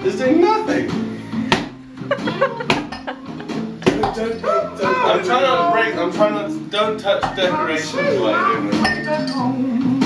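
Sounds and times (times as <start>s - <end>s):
shoe knocking against wall: 1.5s - 1.8s, 3.8s - 4.3s.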